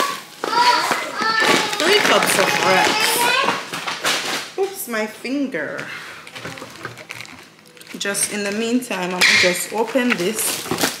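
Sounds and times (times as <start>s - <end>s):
children talking and calling out: 0.0s - 3.7s.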